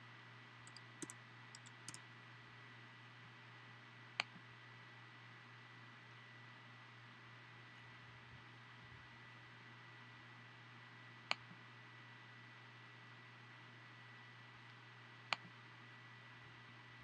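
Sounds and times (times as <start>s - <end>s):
sharp click: 0.7s - 2.0s.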